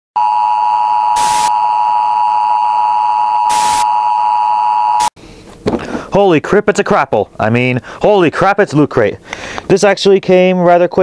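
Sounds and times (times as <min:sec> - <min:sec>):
test tone beep: 0:00.2 - 0:05.1
static hiss bursts: 0:01.2 - 0:01.5, 0:03.5 - 0:03.9.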